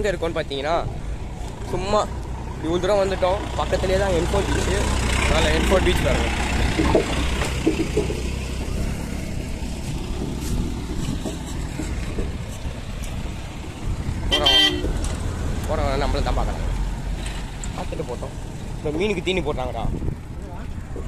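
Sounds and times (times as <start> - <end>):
wind on microphone: 5.8 - 15.6, 19.7 - 21.0.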